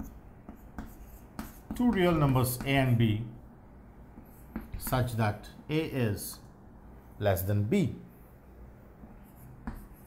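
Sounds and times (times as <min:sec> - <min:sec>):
chalk scraping on chalkboard: 0:00.0 - 0:03.0, 0:09.2 - 0:10.0
chalk tapping on board: 0:00.0 - 0:03.0, 0:04.1 - 0:05.2, 0:09.4 - 0:10.0.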